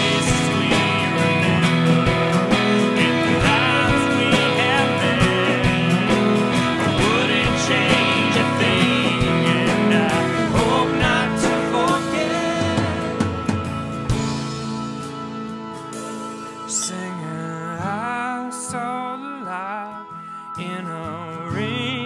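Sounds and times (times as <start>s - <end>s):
keyboard: 0.0s - 22.0s
strummed acoustic guitars: 0.0s - 22.0s.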